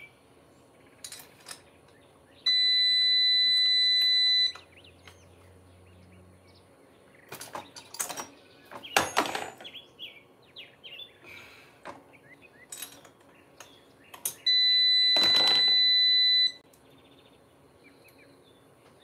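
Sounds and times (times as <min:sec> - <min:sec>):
birds chirping faintly: 0:00.0 - 0:19.0
tools and parts clattering: 0:01.0 - 0:02.0, 0:07.2 - 0:09.8, 0:11.8 - 0:16.0
high-pitched electronic beep: 0:02.5 - 0:04.6.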